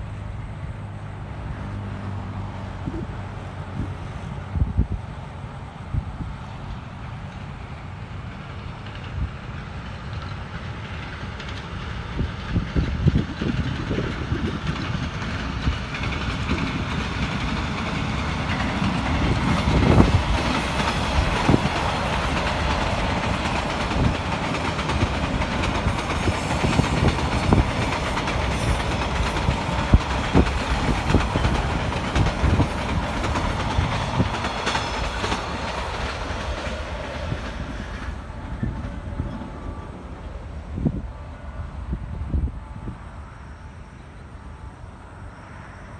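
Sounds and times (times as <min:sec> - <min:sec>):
diesel locomotive passing: 0:00.0 - 0:45.9
train wheels clattering over rail joints: 0:06.6 - 0:39.5.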